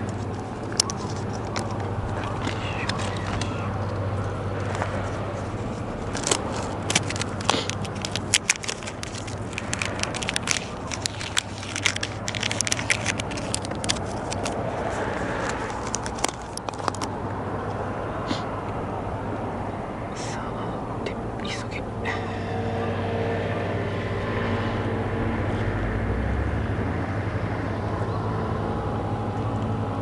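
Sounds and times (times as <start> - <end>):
plastic packaging crackling: 0.0 - 17.1
steady low hum: 0.0 - 30.0.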